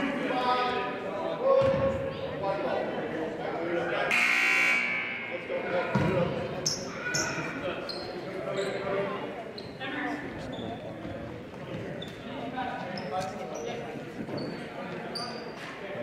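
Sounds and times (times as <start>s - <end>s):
scoreboard buzzer: 4.1s - 5.3s.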